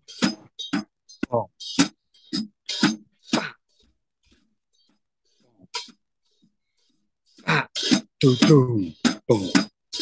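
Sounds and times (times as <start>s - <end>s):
person beatboxing drum pattern: 1.2s - 3.6s, 7.4s - 10.0s.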